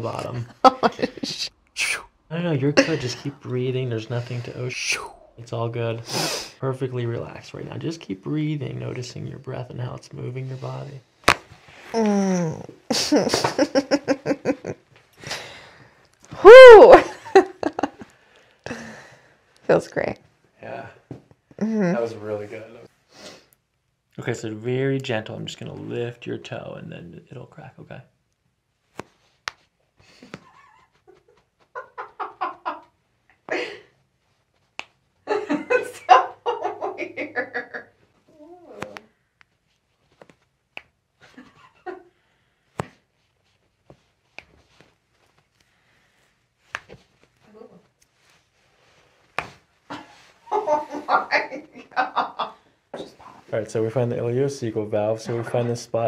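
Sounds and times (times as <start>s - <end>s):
woman giggling: 0.5s - 1.5s, 12.0s - 14.8s, 16.5s - 18.1s, 30.3s - 32.9s, 49.9s - 52.6s.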